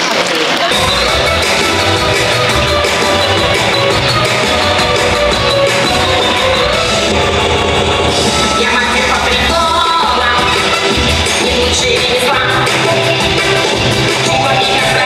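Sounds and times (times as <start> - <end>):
dance music with pulsing bass: 0.7 - 15.0.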